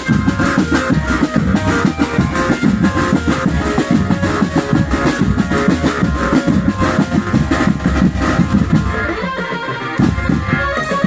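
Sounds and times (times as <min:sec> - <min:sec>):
fast drumming: 0:00.0 - 0:11.0
sustained melody line: 0:00.0 - 0:11.0.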